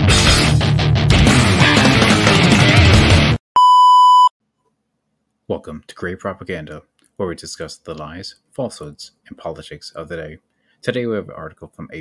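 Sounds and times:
loud rock music: 0.0s - 3.4s
steady electronic beep: 3.6s - 4.3s.

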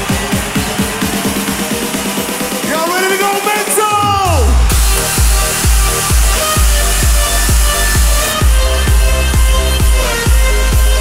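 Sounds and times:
electronic dance music: 0.0s - 11.0s
steady kick drum: 3.9s - 11.0s.

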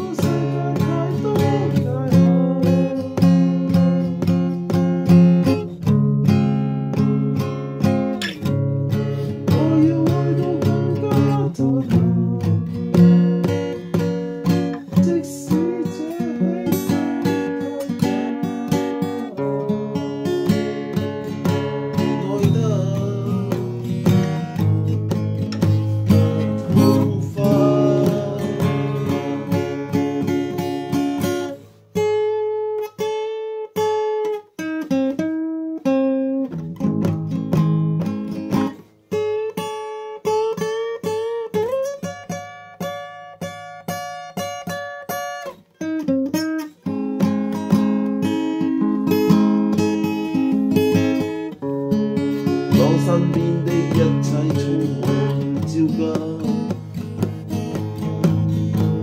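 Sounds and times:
acoustic guitar picked and strummed: 0.0s - 59.0s.

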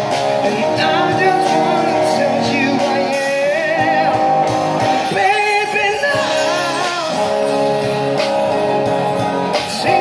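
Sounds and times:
person singing: 0.0s - 7.8s
amplified guitars: 0.0s - 10.0s
drum kit: 0.0s - 10.0s.

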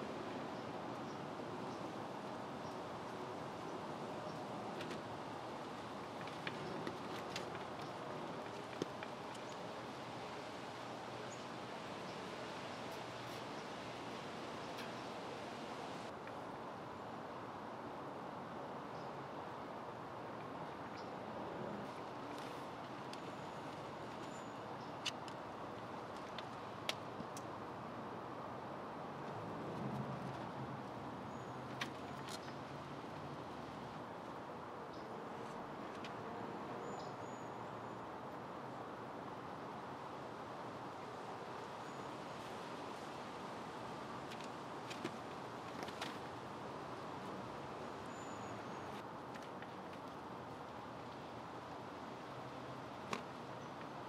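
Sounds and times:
steady hiss: 0.0s - 16.2s
faint high bird chirps: 48.1s - 49.0s.

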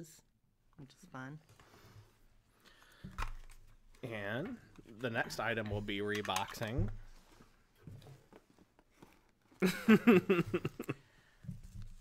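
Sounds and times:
faint handling sounds: 1.4s - 9.6s
person laughing: 9.6s - 11.0s.

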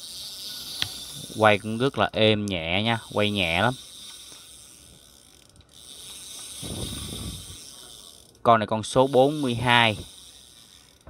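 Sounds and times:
fishing reel whirring and clicking: 0.0s - 11.0s.

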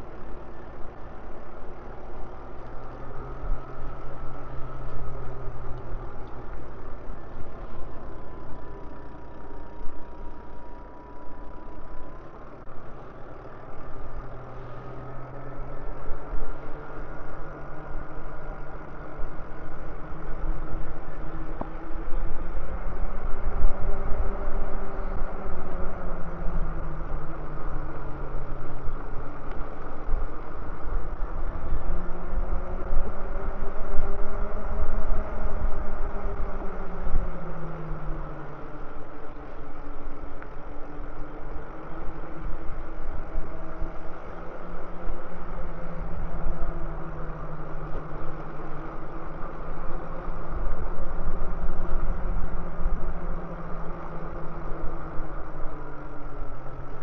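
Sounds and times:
electric bike motor whining: 0.0s - 57.0s
wind rumble on microphone: 0.0s - 57.0s.

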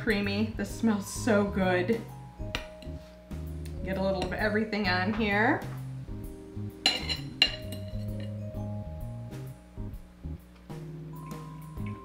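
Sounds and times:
background music: 0.0s - 12.0s
cutlery clinking on a plate: 6.9s - 8.4s.

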